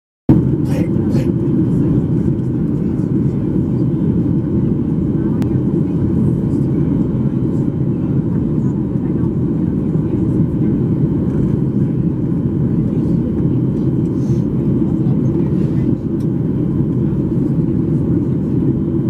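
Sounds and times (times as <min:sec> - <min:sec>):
airliner cabin engine rumble: 0:00.3 - 0:19.0.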